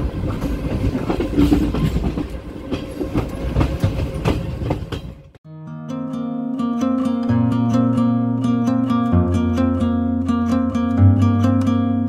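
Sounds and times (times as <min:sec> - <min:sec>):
train wheels rumbling on track: 0:00.0 - 0:05.4.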